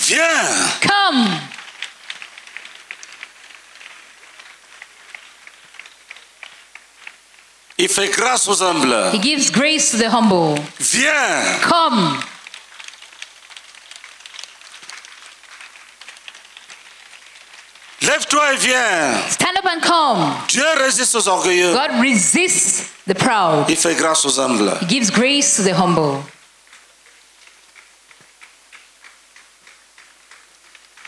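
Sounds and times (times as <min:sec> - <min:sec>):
light ticks and crackles: 0:01.0 - 0:07.8, 0:11.7 - 0:18.0, 0:26.3 - 0:31.0
faint regular ticking: 0:12.3 - 0:18.0.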